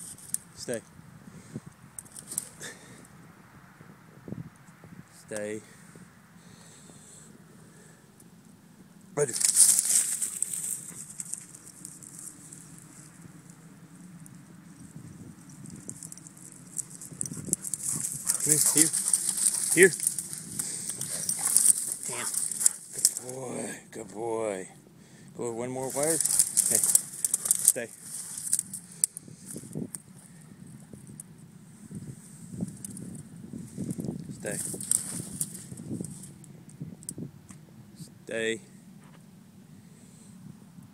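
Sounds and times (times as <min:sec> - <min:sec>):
rustling of dry grass: 0:00.0 - 0:03.1, 0:09.2 - 0:23.7, 0:25.4 - 0:37.3.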